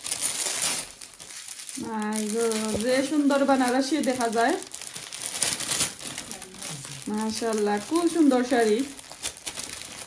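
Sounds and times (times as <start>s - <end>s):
wrapping paper rustling and crinkling: 0.0s - 10.0s.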